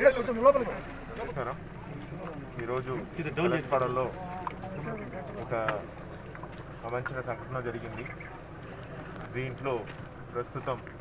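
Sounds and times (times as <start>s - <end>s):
man speaking: 0.0s - 1.6s.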